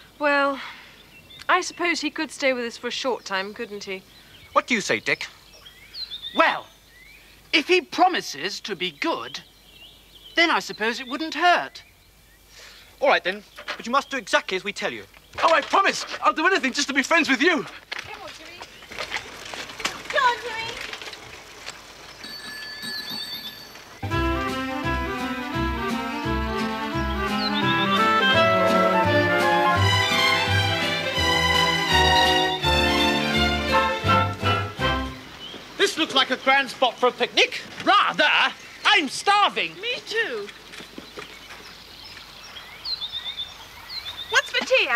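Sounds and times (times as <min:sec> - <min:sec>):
songbirds chirping: 0:00.0 - 0:44.9
bicycle bell ringing: 0:22.2 - 0:24.0.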